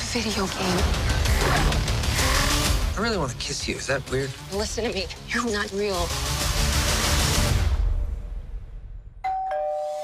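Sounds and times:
music: 0:00.0 - 0:09.2.

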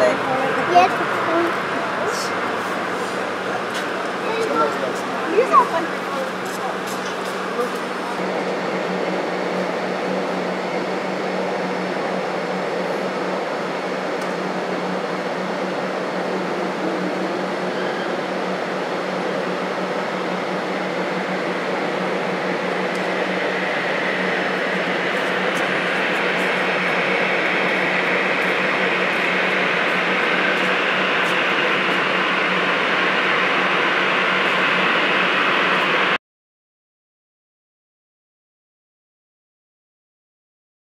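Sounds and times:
high engine whine: 0:00.0 - 0:36.2
jet engines of taxiing airliner: 0:00.0 - 0:36.2.

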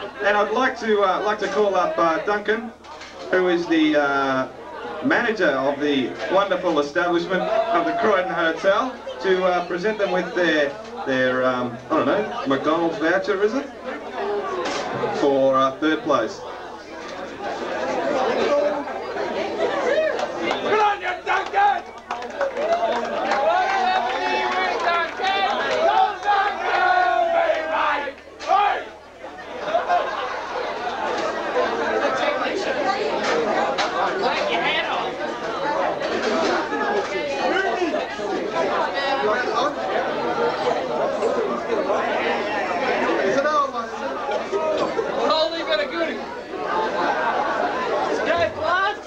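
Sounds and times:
crowd babble: 0:00.0 - 0:49.0.

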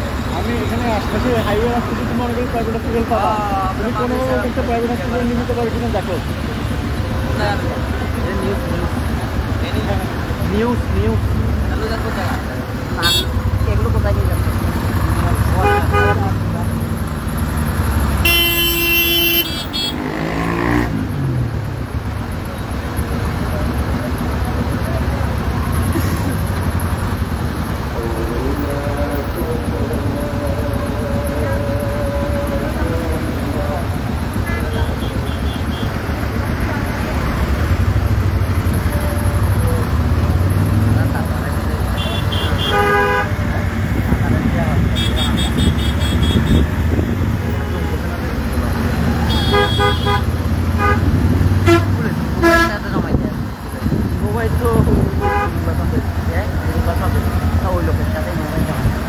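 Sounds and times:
engines rumbling in traffic: 0:00.0 - 0:59.0
vehicle horns honking: 0:13.0 - 0:13.6, 0:15.5 - 0:16.5, 0:18.1 - 0:20.8, 0:34.3 - 0:36.1, 0:41.8 - 0:43.7, 0:44.8 - 0:48.3, 0:49.1 - 0:53.0, 0:55.1 - 0:55.8
background voices: 0:22.2 - 0:42.3.

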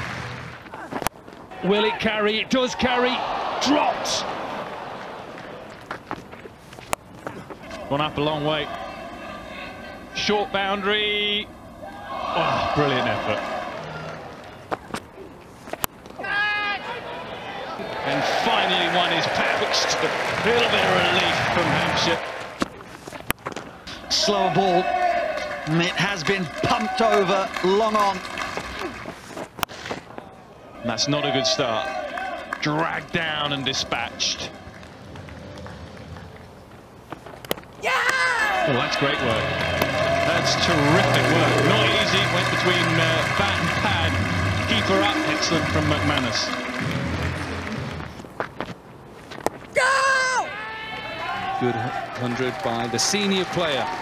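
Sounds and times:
faint ground ambience: 0:00.0 - 0:54.0
cricket bat striking ball: 0:39.6 - 0:40.0.

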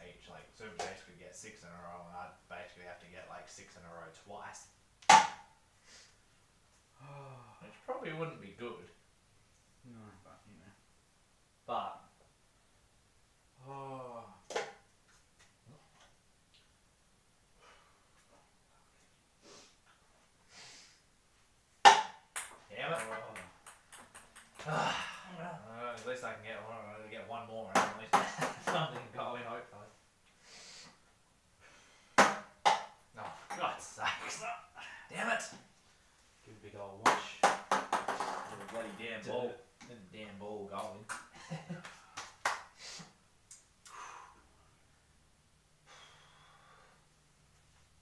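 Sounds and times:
ping-pong balls bouncing on cups: 0:21.8 - 0:24.7, 0:37.1 - 0:39.0.

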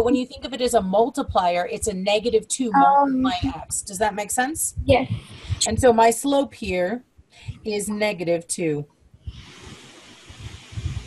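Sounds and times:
steady hiss: 0:09.2 - 0:11.0.

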